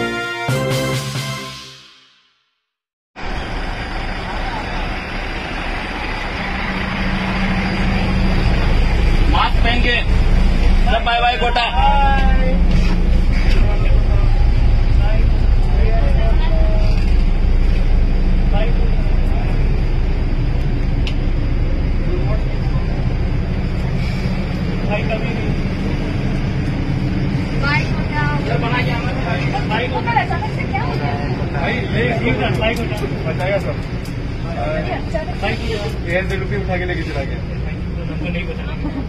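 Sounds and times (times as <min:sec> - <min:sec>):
engine and road rumble: 0:03.2 - 0:39.0
passengers' voices: 0:04.2 - 0:39.0.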